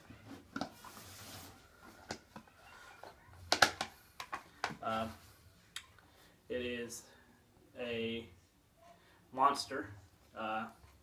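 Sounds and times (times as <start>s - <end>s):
plastic discs clicking and rubbing: 0.0s - 1.0s, 1.8s - 4.8s
plastic discs knocking together: 3.4s - 4.8s.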